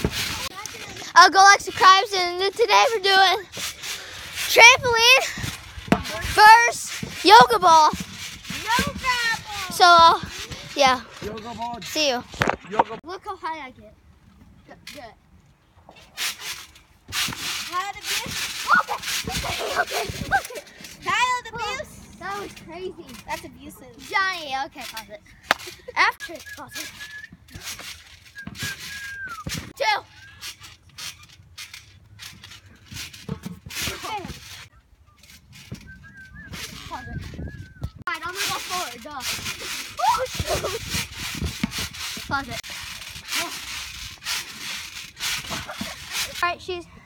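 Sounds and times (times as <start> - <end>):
ball rubbing on trampoline mat: 0.0 - 12.5, 15.9 - 24.8, 32.6 - 34.7, 35.4 - 46.8
children squealing and laughing: 18.6 - 21.8, 39.4 - 41.0.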